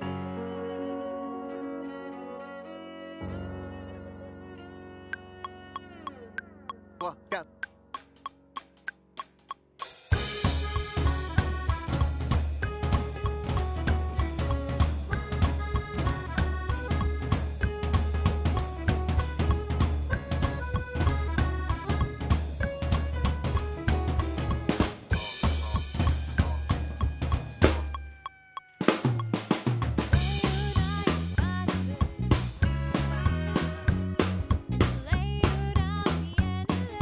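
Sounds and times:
melodic music with bass line: 0:00.0 - 0:28.2, 0:29.2 - 0:37.0
drum kit played busily: 0:07.9 - 0:28.0, 0:28.8 - 0:37.0.

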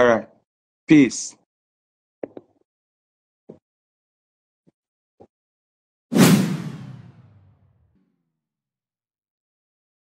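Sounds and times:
whoosh sound effect: 0:06.1 - 0:07.5.

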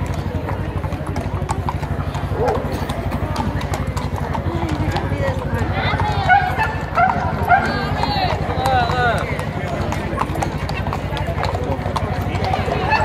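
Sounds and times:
hooves clip-clopping on stone: 0:00.0 - 0:13.0
people's voices: 0:00.0 - 0:13.0.

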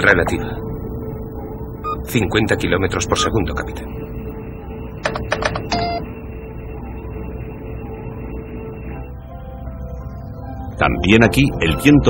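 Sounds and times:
electronic drone: 0:00.0 - 0:12.0
held electronic beep: 0:01.3 - 0:02.2, 0:03.0 - 0:10.4.

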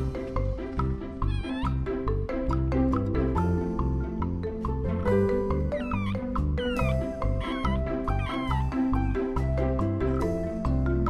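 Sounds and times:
soft mallet percussion music: 0:00.0 - 0:11.0
puppy squeaky cries: 0:01.2 - 0:01.9, 0:05.0 - 0:08.9.

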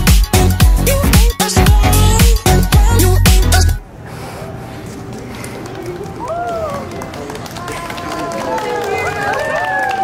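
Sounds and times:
low hum of surroundings: 0:02.9 - 0:10.0.

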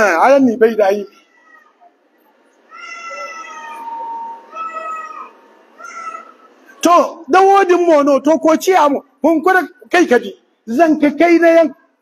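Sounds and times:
high-pitched calls: 0:01.8 - 0:06.9.

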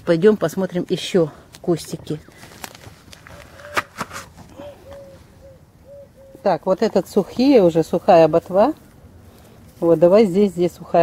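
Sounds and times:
bird hooting: 0:03.3 - 0:03.9, 0:04.5 - 0:06.6.

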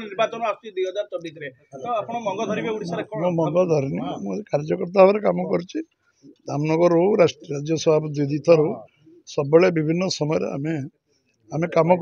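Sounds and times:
man talking: 0:00.0 - 0:10.9, 0:11.5 - 0:12.0.

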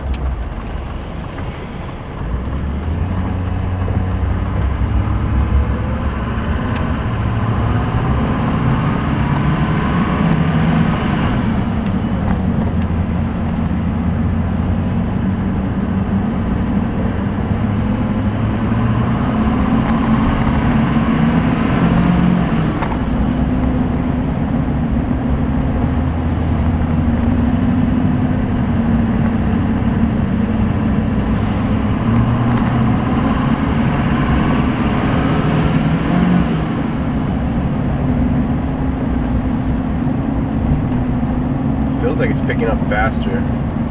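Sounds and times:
diesel engine rumble: 0:00.0 - 0:43.9.

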